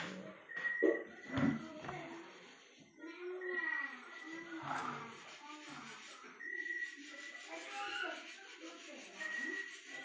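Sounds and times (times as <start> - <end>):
low voices talking: 0.0 - 10.0.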